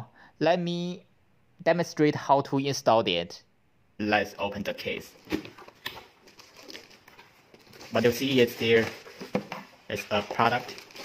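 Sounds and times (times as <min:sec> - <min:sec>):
person speaking: 0:00.0 - 0:05.4, 0:07.6 - 0:11.0
plastic wrap handling: 0:05.1 - 0:11.0
cardboard box rustling: 0:05.2 - 0:11.0.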